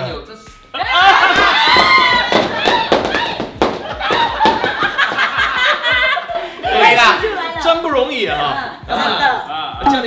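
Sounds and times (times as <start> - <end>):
people shrieking and laughing: 0.8 - 7.5
foam pool noodles smacking: 1.3 - 5.3.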